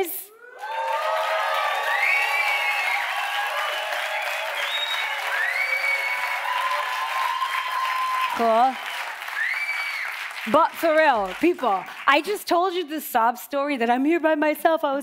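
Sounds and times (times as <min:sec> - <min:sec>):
whoops from audience: 0:00.3 - 0:08.4, 0:09.3 - 0:10.2
audience clapping and cheering: 0:00.4 - 0:12.8.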